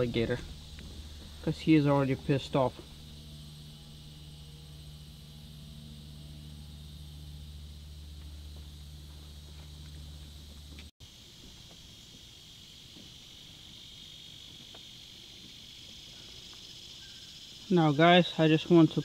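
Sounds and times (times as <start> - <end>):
insects trilling: 0.0 - 19.0
steady low hum: 0.0 - 19.0.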